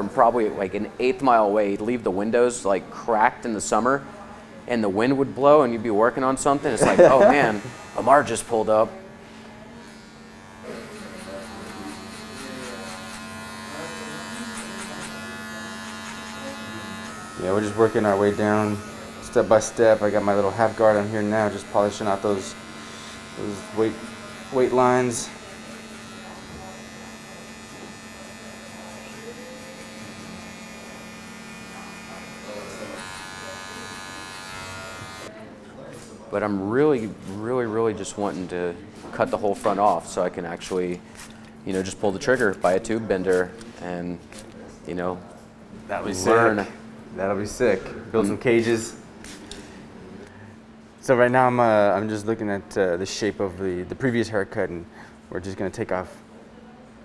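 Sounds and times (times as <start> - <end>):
electric hair clippers humming: 5.6 - 35.3.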